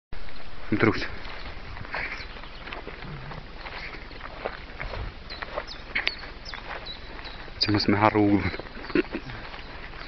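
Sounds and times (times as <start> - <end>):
footsteps on dirt track: 0.2 - 10.0
grass rustling: 0.2 - 10.0.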